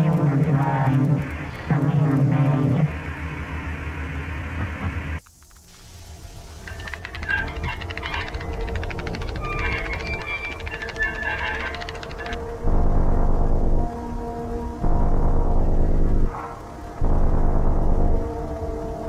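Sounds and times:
crackling static noise: 0.0 - 19.0
low droning hum: 0.0 - 19.0
warbling tones: 6.5 - 18.6.

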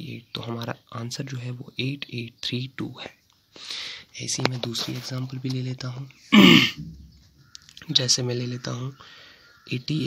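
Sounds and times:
man clearing his throat: 6.3 - 6.8.

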